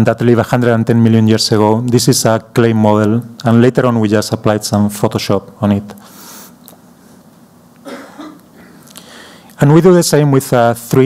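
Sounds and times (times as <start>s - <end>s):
person clearing throat: 7.8s - 8.8s.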